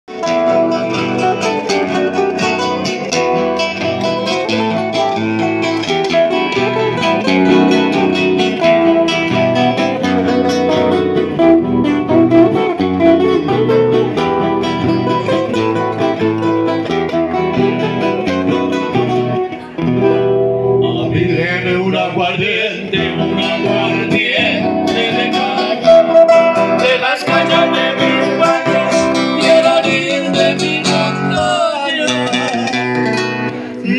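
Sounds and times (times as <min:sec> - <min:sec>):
acoustic guitars strumming: 0:00.1 - 0:33.9
man singing: 0:20.8 - 0:33.9.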